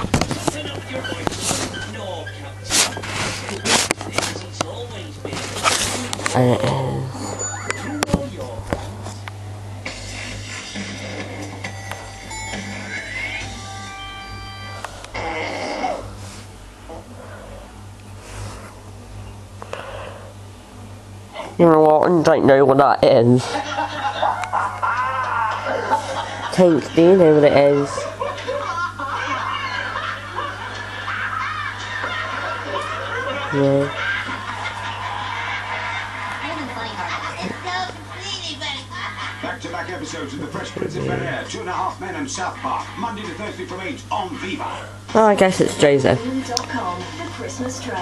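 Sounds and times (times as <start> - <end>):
music from television: 0.0 - 6.0, 7.6 - 15.1, 39.2 - 45.1, 46.2 - 48.0
steady low hum: 0.0 - 48.0.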